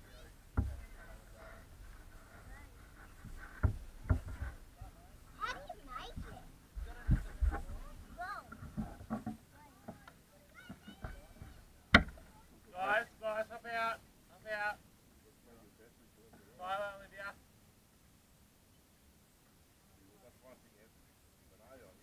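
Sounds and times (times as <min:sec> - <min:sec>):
faint unclear voices: 0:00.0 - 0:13.2.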